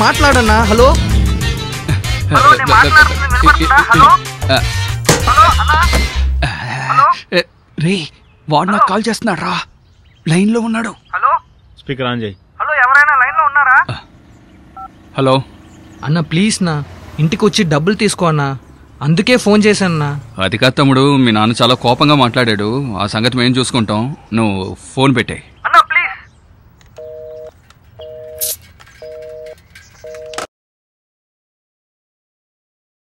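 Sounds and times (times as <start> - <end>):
two-tone phone keypad beep: 27.0 - 30.5.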